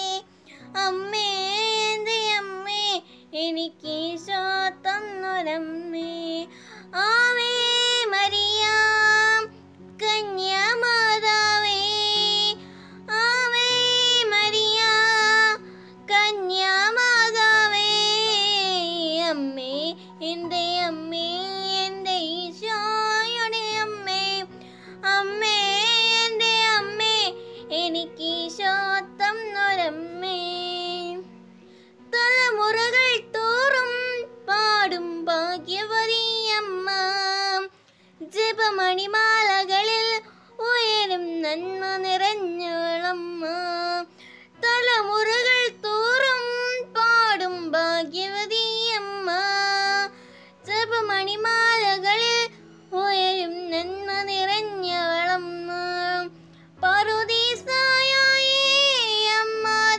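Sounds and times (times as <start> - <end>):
girl singing: 0.0 - 59.9.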